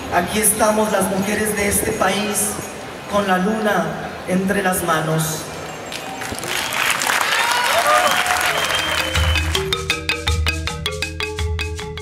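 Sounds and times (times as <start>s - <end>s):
audience applause: 5.9s - 9.7s
music with pulsing bass: 8.9s - 12.0s.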